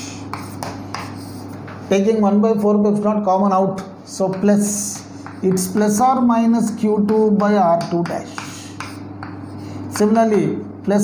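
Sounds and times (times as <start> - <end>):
chalk scratching on blackboard: 0.0 - 1.7, 4.3 - 6.0, 7.8 - 10.1.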